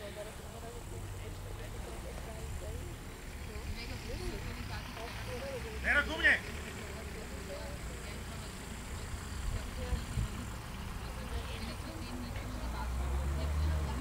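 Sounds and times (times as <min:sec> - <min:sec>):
wind rumble on microphone: 0:09.4 - 0:10.6.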